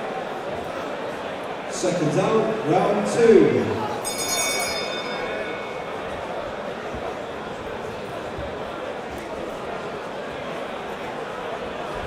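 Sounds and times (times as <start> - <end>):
crowd chatter: 0.0 - 12.0
boxing ring bell ringing: 4.0 - 6.5.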